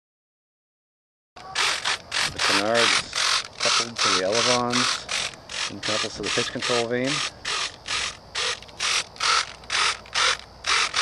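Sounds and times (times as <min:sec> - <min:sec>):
servos whirring in short bursts: 0:01.4 - 0:11.0.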